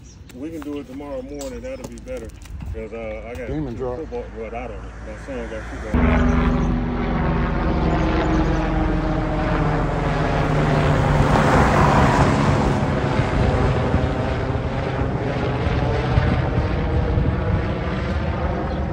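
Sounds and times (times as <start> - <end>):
helicopter rotor chopping: 0.4 - 18.9.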